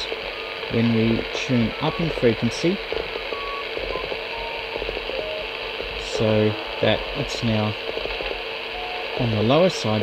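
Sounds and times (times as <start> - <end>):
light crackling: 0.0 - 10.0
radio receiver hiss: 0.0 - 10.0.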